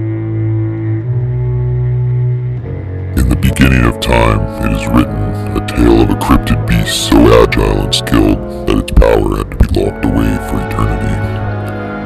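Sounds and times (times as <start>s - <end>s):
low bass notes: 0.0s - 12.0s.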